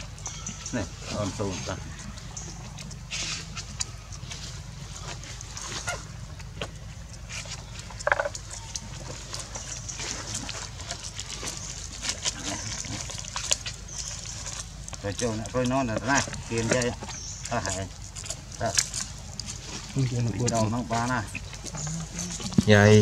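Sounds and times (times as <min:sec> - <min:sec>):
monkeys lapping milk: 0:00.0 - 0:23.0
steady low hum: 0:00.0 - 0:23.0.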